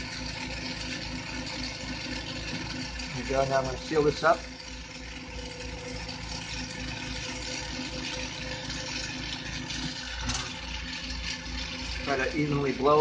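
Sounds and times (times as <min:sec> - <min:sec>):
oxygen concentrators humming: 0:00.0 - 0:13.0.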